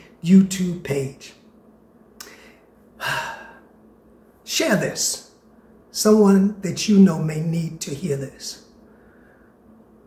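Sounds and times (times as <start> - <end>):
person sighing: 2.2 - 3.7.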